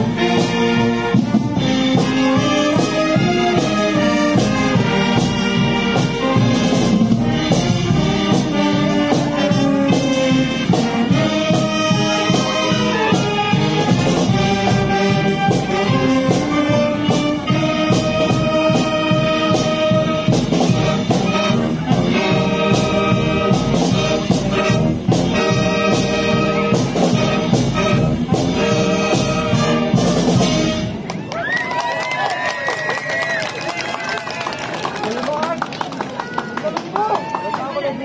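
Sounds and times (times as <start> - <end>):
wind band playing: 0.0 - 36.9
crowd talking and calling out: 0.0 - 38.0.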